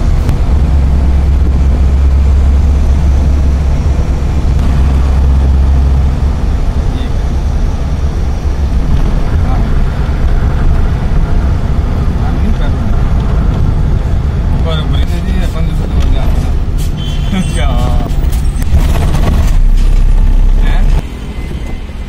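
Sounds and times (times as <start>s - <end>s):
vehicle engine and road rumble: 0.0s - 22.0s.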